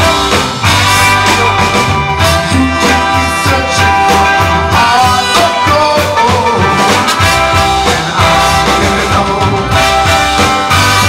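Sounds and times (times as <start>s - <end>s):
horn section: 0.0s - 11.0s
soul band playing: 0.0s - 11.0s.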